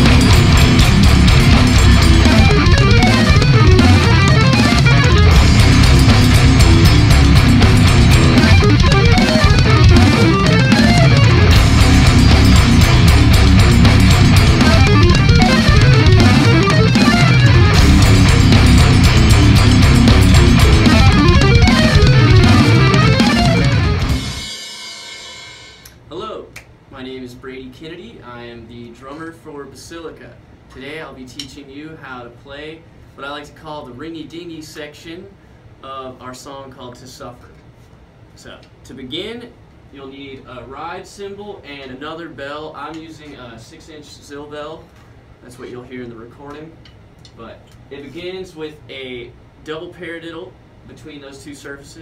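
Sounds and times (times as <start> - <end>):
heavy metal music: 0.0 - 25.8
heavy metal song: 0.0 - 25.8.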